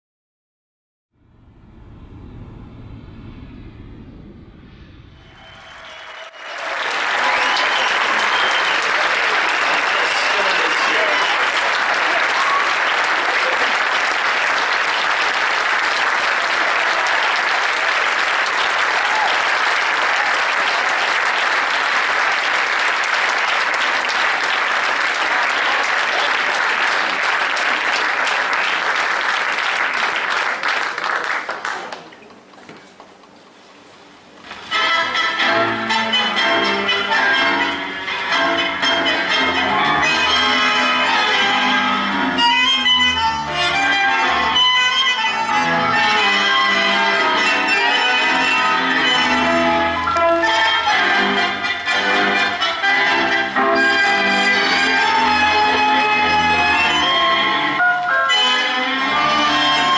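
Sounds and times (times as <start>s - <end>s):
crowd voices: 5.2s - 28.3s
audience applauding: 5.2s - 33.3s.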